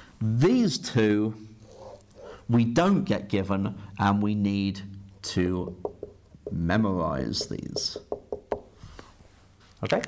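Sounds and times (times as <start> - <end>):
marker tapping on whiteboard: 5.6 - 8.8.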